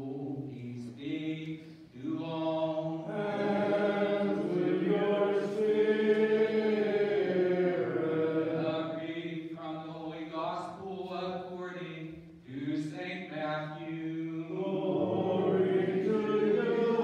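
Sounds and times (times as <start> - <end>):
voices chanting unaccompanied: 2.3 - 9.5, 14.0 - 17.0.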